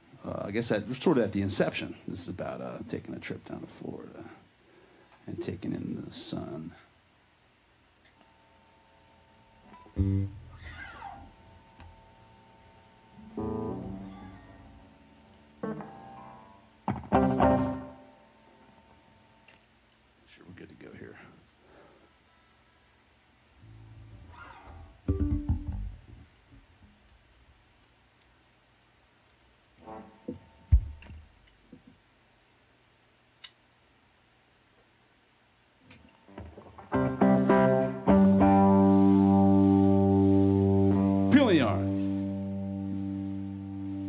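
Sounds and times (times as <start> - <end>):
electric guitar chords ringing: 9.7 - 10.6, 12.1 - 18.9, 25.0 - 26.0, 36.8 - 44.0
thumps and knocks through amp: 25.0 - 26.6, 30.3 - 32.0.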